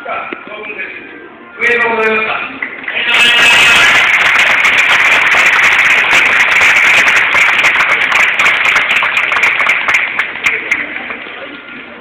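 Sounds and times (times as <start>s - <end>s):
audience applauding: 2.6s - 11.3s.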